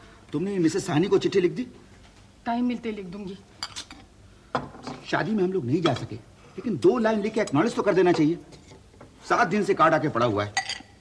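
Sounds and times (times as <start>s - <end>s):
crockery and cutlery clinking: 3.6s - 5.1s, 5.8s - 8.8s, 10.4s - 11.0s.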